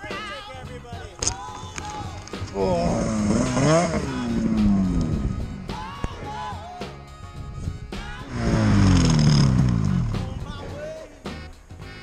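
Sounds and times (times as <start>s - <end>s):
music: 0.0s - 12.0s
snowmobile engine revving: 2.4s - 5.9s, 8.2s - 10.4s.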